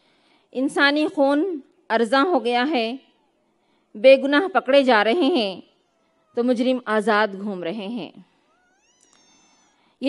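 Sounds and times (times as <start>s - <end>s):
faint high-pitched cry: 5.3s - 7.1s, 8.2s - 10.0s.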